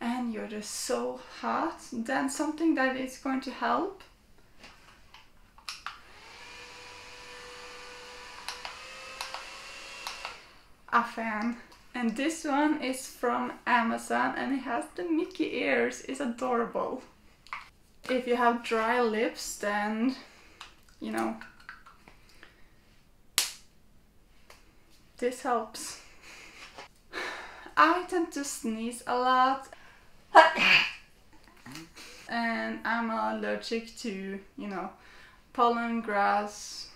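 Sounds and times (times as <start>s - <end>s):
small fan motor whine: 5.9s - 10.7s.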